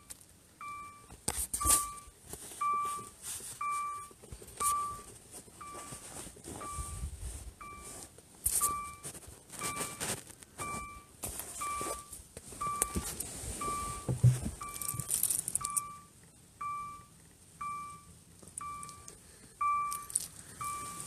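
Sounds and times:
electronic beeps: 0:00.0 - 0:06.0, 0:06.6 - 0:21.0
handling rustling: 0:01.2 - 0:15.9, 0:19.9 - 0:21.0
handling knocks: 0:14.0 - 0:15.3.

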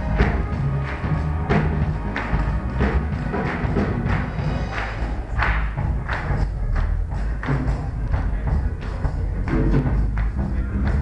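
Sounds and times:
loud live music: 0:00.0 - 0:11.0.

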